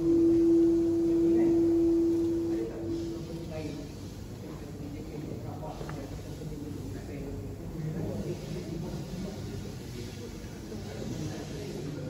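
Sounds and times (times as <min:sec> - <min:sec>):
steady single-pitched tone: 0:00.0 - 0:04.2.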